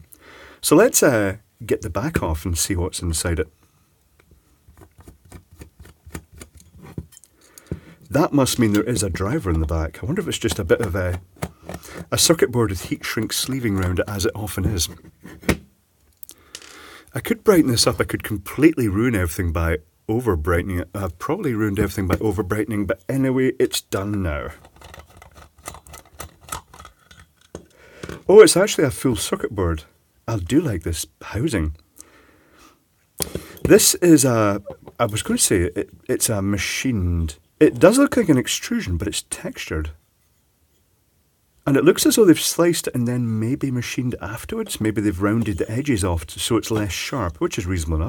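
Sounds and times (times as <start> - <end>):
screwdriver clicking on plastic: 10.5 - 12.1.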